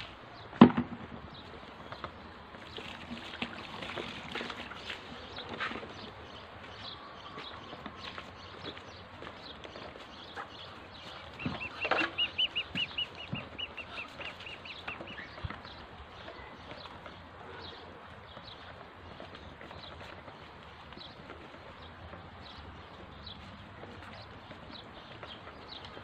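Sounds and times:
ducklings peeping: 1.3 - 26.0
beaks pecking plastic feeder: 7.8 - 17.2.

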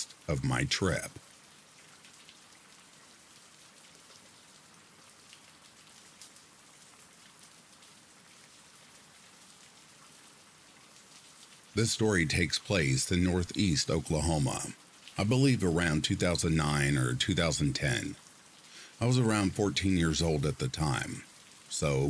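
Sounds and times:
raindrop ticks: 0.0 - 22.0
steady rain hiss: 0.0 - 22.0.

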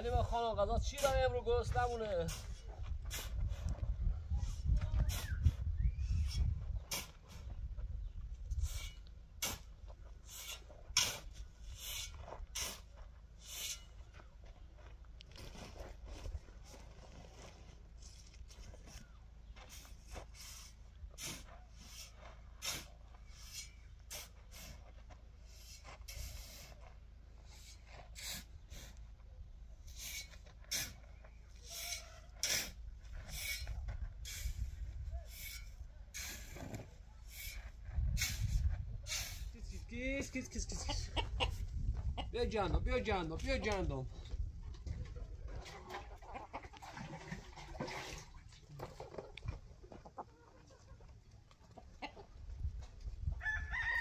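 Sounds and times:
shovel scraping into sand: 1.8 - 3.8, 4.4 - 5.6, 6.2 - 7.5, 8.5 - 14.0, 19.6 - 29.0, 29.8 - 39.9.

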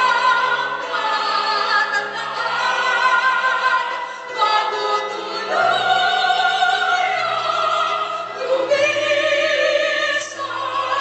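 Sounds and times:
choir singing chords: 0.0 - 11.0.

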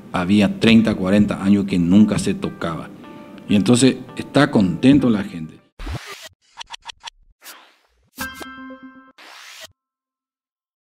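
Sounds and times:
scratch-like stutters: 5.8 - 8.1.

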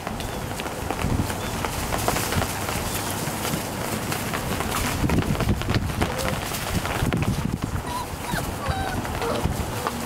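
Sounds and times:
puppies rustling in wood shavings: 0.0 - 10.0
puppy squeak: 7.8 - 9.4.

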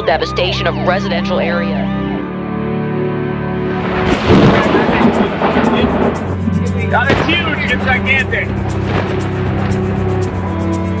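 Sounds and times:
loud thunder rumbling: 3.7 - 10.6.

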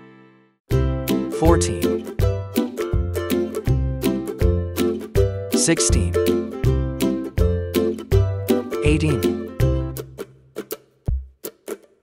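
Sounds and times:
instrumental music: 0.0 - 12.0.

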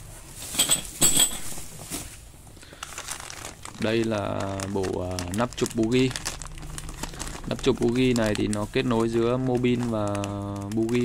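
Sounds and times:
plastic bag crinkling: 1.4 - 11.0.

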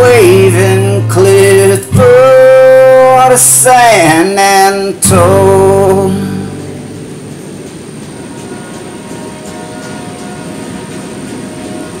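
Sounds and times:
song's last chord: 0.0 - 12.0
train rolling on rails: 0.0 - 12.0.

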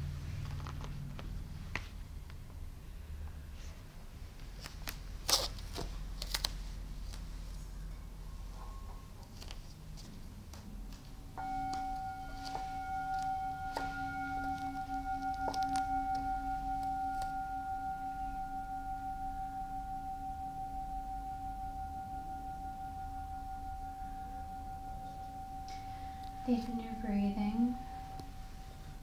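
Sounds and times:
singing bowl ringing: 11.4 - 29.0.

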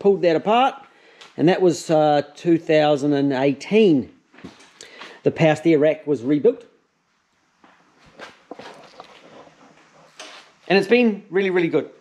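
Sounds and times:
footsteps on workshop floor: 7.6 - 10.6.

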